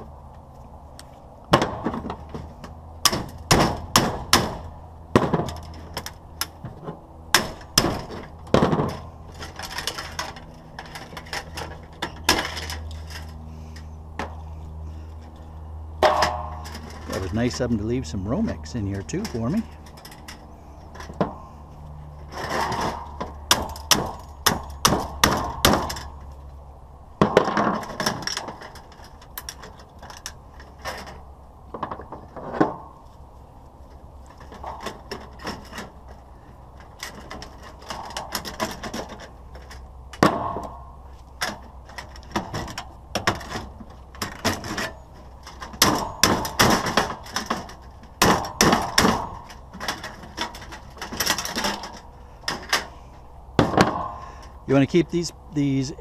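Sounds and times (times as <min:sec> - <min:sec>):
sharp knocks and cracks: 0:01.0 - 0:13.3, 0:16.0 - 0:17.7, 0:22.2 - 0:26.5, 0:27.2 - 0:33.0, 0:33.9 - 0:52.9, 0:53.6 - 0:54.6.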